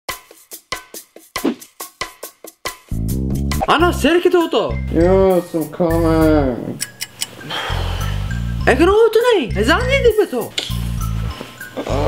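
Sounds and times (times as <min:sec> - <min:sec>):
percussive music with ringing hits: 0:00.1 - 0:04.2.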